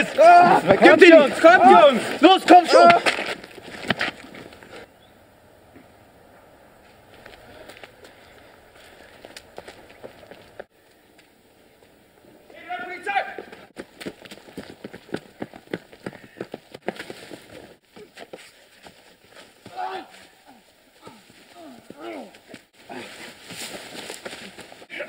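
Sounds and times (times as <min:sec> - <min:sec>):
person shouting: 0:00.0 - 0:03.1, 0:12.5 - 0:13.5, 0:19.7 - 0:22.3
running footsteps: 0:00.0 - 0:04.9, 0:06.8 - 0:24.9.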